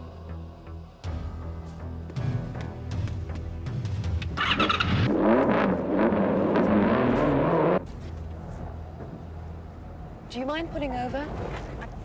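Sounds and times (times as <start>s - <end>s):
motorcycle engine revving: 4.4s - 7.9s.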